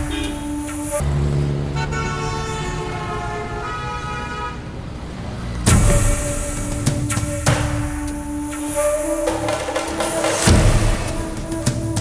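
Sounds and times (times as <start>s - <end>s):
rhythmic background music: 0.0s - 1.0s, 5.7s - 12.0s
held horn-like notes: 0.0s - 4.8s, 5.7s - 12.0s
loud hit: 5.7s - 11.6s.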